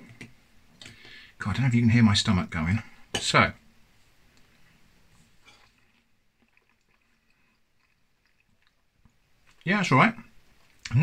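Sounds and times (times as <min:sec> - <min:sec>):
chewing mouth sounds: 0:05.5 - 0:09.6.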